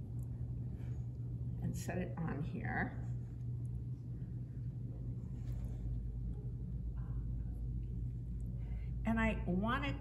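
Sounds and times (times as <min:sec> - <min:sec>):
steady low hum: 0:00.0 - 0:10.0
faint soft rustles: 0:05.0 - 0:06.6.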